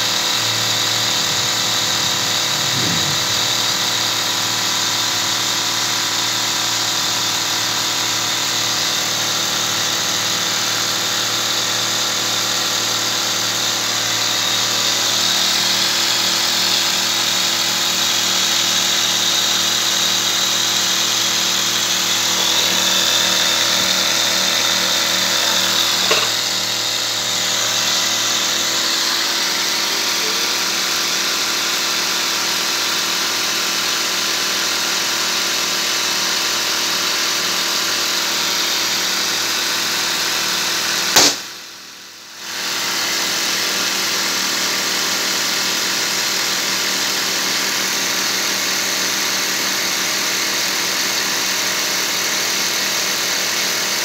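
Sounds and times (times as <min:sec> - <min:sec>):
small air compressors running: 0:00.0 - 0:54.0
brief knock: 0:26.0 - 0:26.4, 0:41.2 - 0:41.5.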